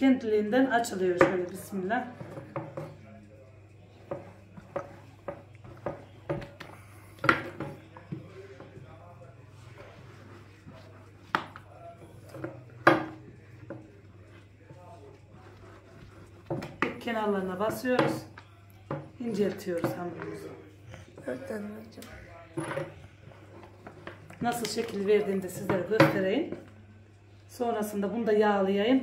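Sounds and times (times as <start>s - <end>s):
metal rolling rod knocking on marble: 0.9s - 3.0s, 4.0s - 6.6s, 7.2s - 8.8s, 12.3s - 14.4s, 16.4s - 20.4s, 22.6s - 23.0s, 24.0s - 26.7s.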